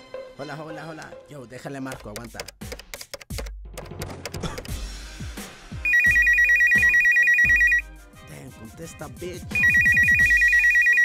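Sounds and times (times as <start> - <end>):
electronic telephone ring: 5.9 - 7.8, 9.6 - 11.0.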